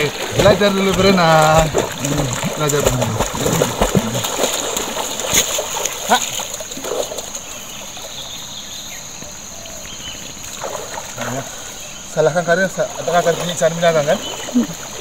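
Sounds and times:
dog splashing in water: 0:00.0 - 0:08.2, 0:10.4 - 0:11.5
high insect drone: 0:00.0 - 0:15.0
river water washing: 0:00.0 - 0:15.0.

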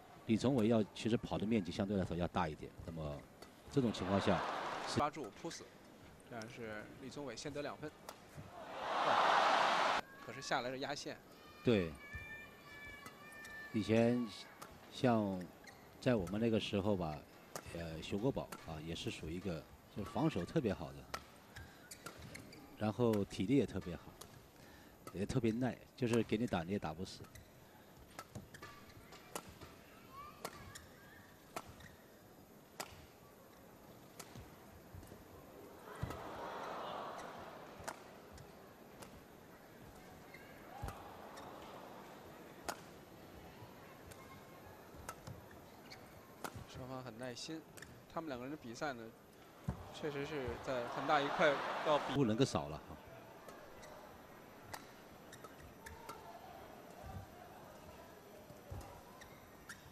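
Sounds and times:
crowd noise: 0:03.6 - 0:05.2, 0:08.4 - 0:10.1, 0:35.3 - 0:46.7, 0:49.0 - 0:59.2
shoe squeaks on court: 0:15.6 - 0:15.9, 0:45.4 - 0:46.7, 0:54.8 - 0:56.0, 0:58.9 - 0:59.9
racket hitting shuttlecock: 0:35.9 - 0:36.3, 0:37.2 - 0:39.2, 0:40.7 - 0:43.0.

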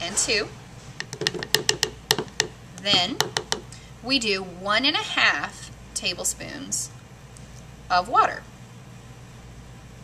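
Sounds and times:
plastic spoon tapping plastic bowl: 0:01.0 - 0:03.7.

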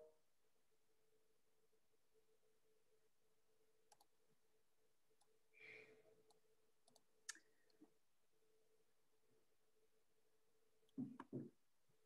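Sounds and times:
faint sharp clicks: 0:03.9 - 0:04.1.

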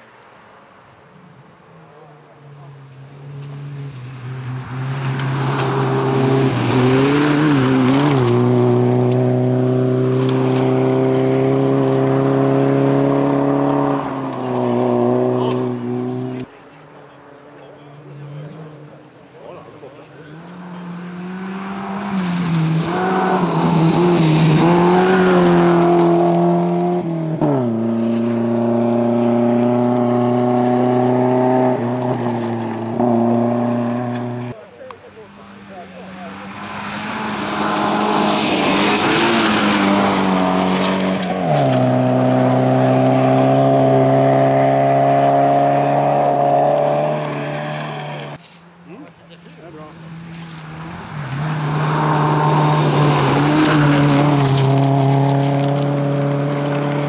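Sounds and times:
rally car engines passing at speed: 0:00.0 - 0:57.0
hiss of tyres on gravel: 0:48.4 - 0:48.8.

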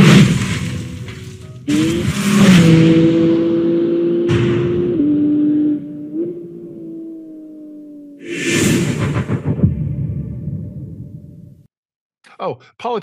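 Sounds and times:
sports car engine revving: 0:01.7 - 0:07.9.

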